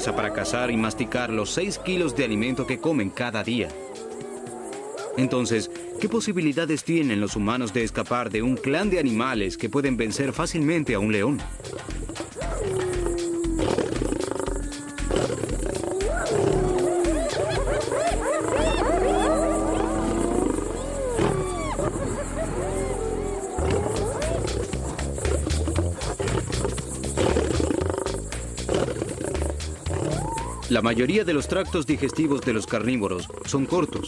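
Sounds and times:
hyenas yelping and whooping: 0.0s - 6.2s, 11.7s - 27.3s, 28.0s - 34.0s
lion growling: 0.0s - 6.2s, 11.0s - 34.0s
documentary music: 0.0s - 34.0s.

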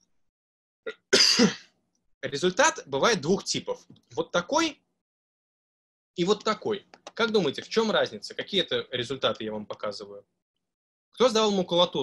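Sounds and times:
person coughing: 0.9s - 1.7s.

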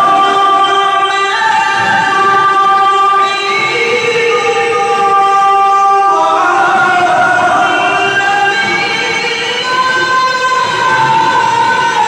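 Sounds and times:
man reciting melodically: 0.0s - 12.0s.

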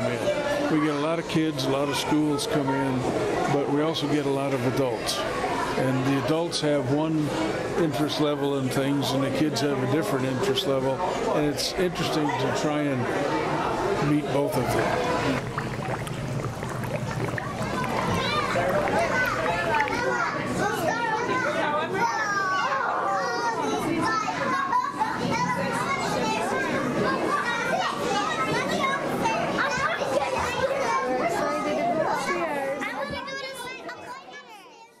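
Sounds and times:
children chattering and calling: 0.0s - 8.6s, 12.2s - 35.0s.

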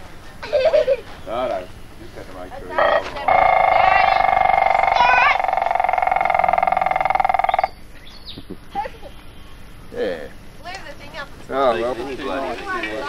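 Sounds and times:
voices: 0.8s - 7.7s, 8.7s - 13.0s.

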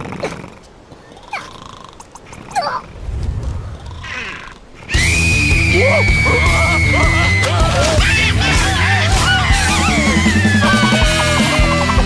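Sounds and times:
low rumble: 2.9s - 8.5s
cartoon characters squealing: 4.1s - 11.4s.

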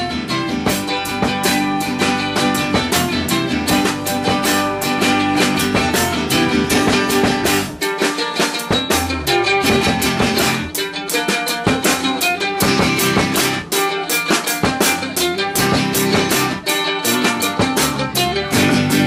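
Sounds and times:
drum kit beat: 0.0s - 19.0s
strummed electric-acoustic guitar: 0.0s - 19.0s.

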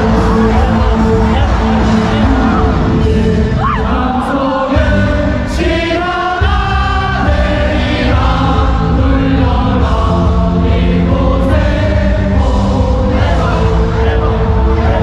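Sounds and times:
amplified music with heavy bass: 0.0s - 15.0s
crowd singing a cheer song: 0.0s - 15.0s.

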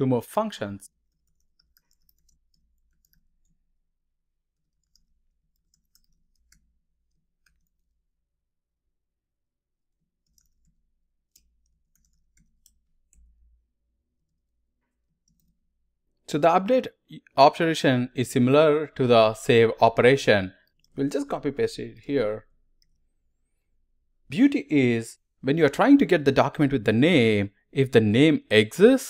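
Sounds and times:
computer keyboard typing: 0.9s - 3.7s, 4.5s - 8.0s, 10.0s - 13.5s, 15.2s - 15.6s.

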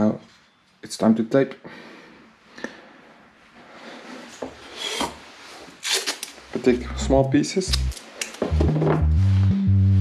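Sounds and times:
rubbing and rustling of objects: 3.6s - 6.8s.

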